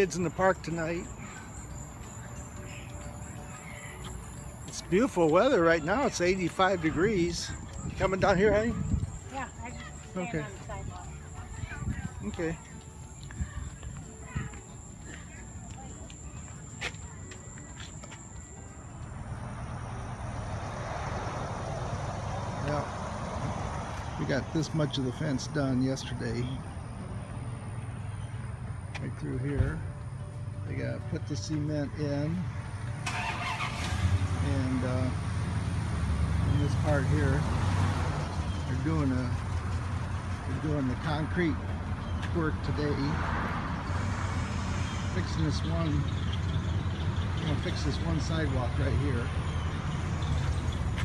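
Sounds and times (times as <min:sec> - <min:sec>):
engine rumbling: 0:00.0 - 0:51.0
road vehicle passing: 0:00.0 - 0:51.0.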